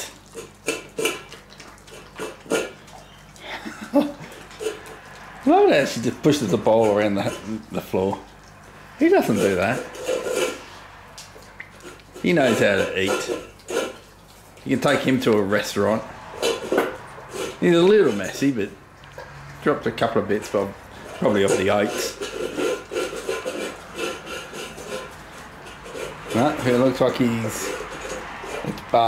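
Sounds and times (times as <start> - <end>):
dog eating from bowl: 0.0 - 29.0.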